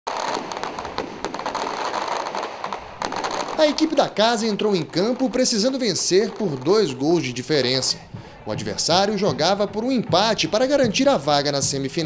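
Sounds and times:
firecrackers popping: 0.1 - 12.0
crowd din: 5.8 - 12.0.

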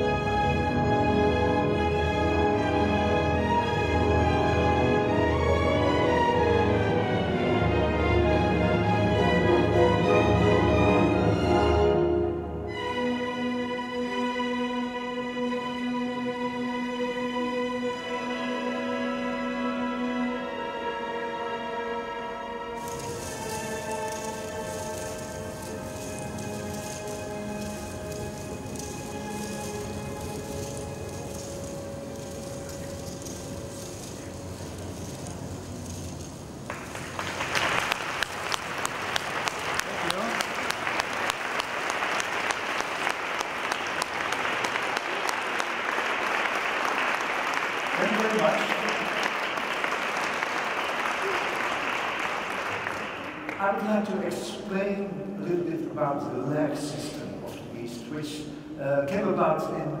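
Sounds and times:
film music with held tones: 0.0 - 60.0
audience applause: 36.6 - 53.8.

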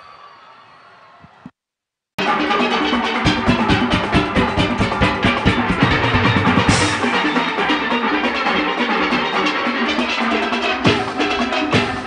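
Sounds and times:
light percussion: 2.2 - 12.0
steel pans ringing: 2.4 - 12.0
deep bass beats: 3.2 - 7.6.

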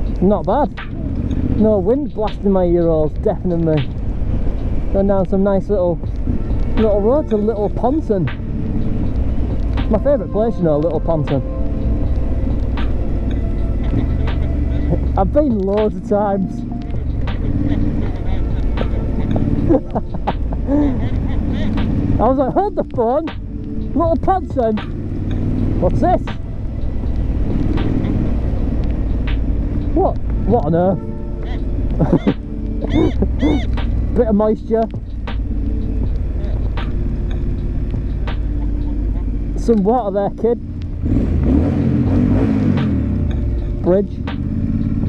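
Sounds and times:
motorcycle engine cruising: 0.0 - 45.0
rider's voice: 0.2 - 3.9, 4.9 - 6.1, 6.8 - 8.3, 9.8 - 11.4, 13.8 - 16.7, 17.4 - 19.4, 20.7 - 23.3, 23.9 - 24.8, 25.8 - 26.4, 29.9 - 35.0, 39.6 - 40.6.

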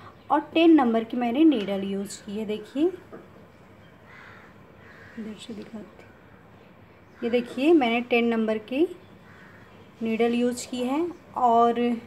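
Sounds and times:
faint bird calls: 3.7 - 8.1, 8.9 - 10.2.

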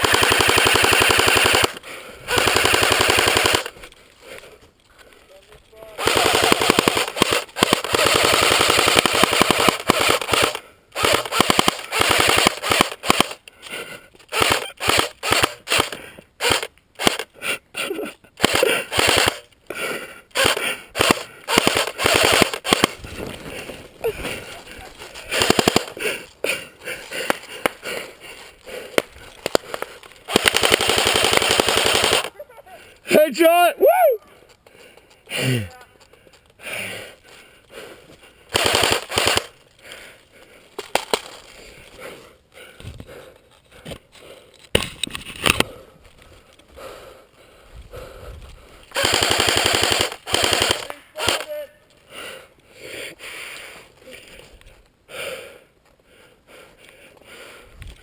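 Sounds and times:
airsoft rifle full-auto bursts: 0.0 - 3.8, 6.0 - 13.4, 14.3 - 17.3, 18.4 - 19.5, 20.3 - 23.1, 25.2 - 28.0, 28.9 - 32.4, 38.5 - 39.6, 48.9 - 51.6.

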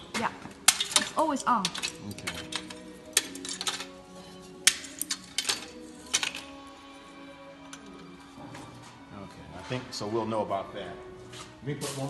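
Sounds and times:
background music: 0.0 - 12.0
wooden blocks clicking together: 4.6 - 6.6.

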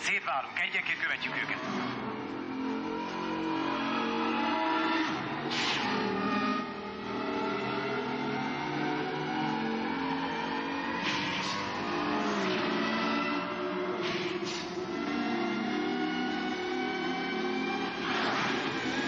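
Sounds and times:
synthesized engine drone: 0.0 - 19.0.

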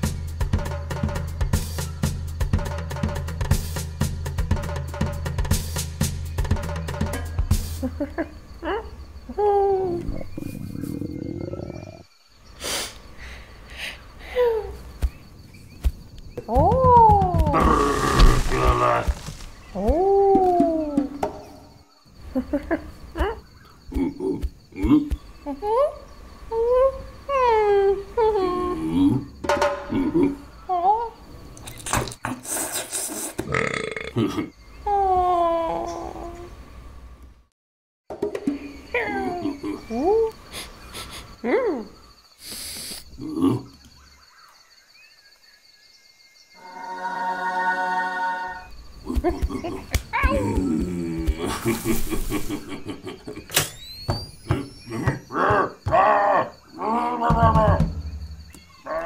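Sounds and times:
faint high chirping: 0.0 - 31.9, 38.4 - 59.0
breathy hiss: 12.4 - 14.8, 32.2 - 33.4, 40.4 - 41.4, 42.3 - 43.2, 51.3 - 52.9
cartoon monkey grunt: 33.4 - 34.5.

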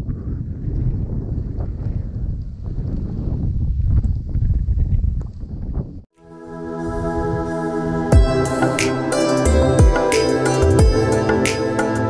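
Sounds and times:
wind buffeting microphone: 0.0 - 6.1.

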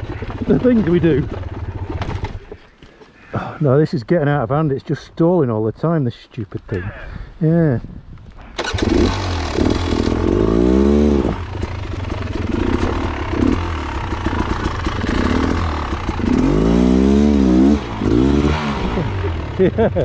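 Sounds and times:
motorcycle engine revving: 0.0 - 2.5, 8.6 - 20.0.

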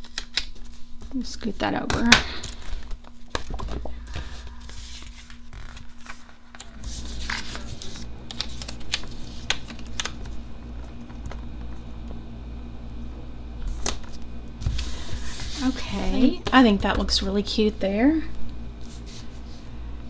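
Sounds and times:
paper rustling: 2.5 - 11.4, 13.6 - 16.3.

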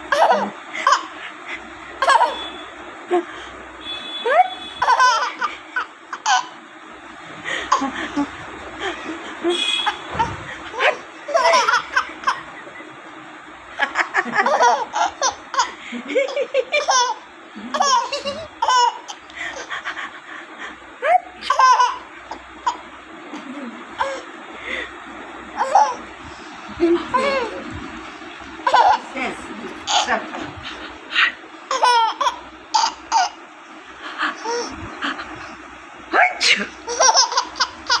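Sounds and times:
baby laughing: 0.1 - 2.5, 4.3 - 6.6, 7.4 - 12.9, 13.8 - 20.3, 21.0 - 24.3, 25.6 - 33.4, 34.2 - 35.6, 36.2 - 38.0.

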